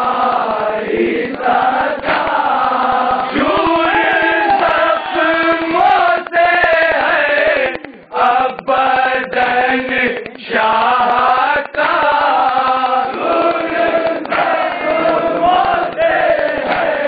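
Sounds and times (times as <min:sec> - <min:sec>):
men chanting in unison: 0:00.0 - 0:17.0.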